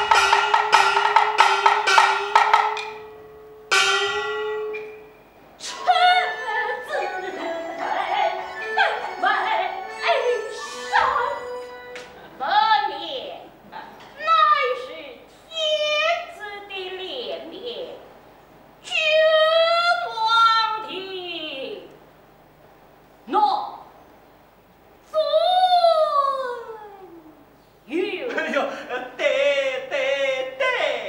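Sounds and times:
ringing metal percussion stroke: 0.0s - 12.0s
loud high voice: 5.6s - 11.6s, 14.2s - 17.0s
stylised opera voice sliding in pitch: 5.6s - 11.6s.

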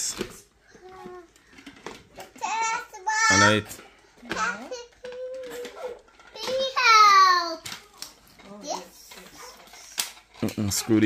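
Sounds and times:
toddler babbling: 4.4s - 7.6s.

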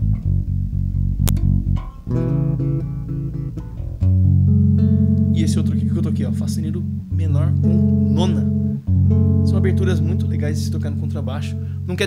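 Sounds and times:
electric bass chords: 0.0s - 12.0s.

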